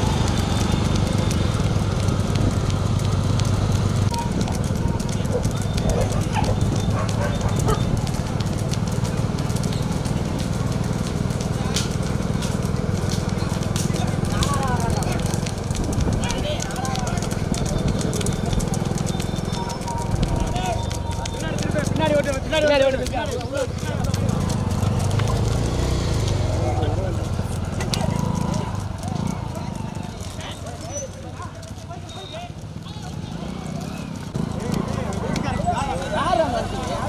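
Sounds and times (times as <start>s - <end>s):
hooves clopping on asphalt: 0.0s - 37.0s
motorcycle engines running: 0.0s - 37.0s.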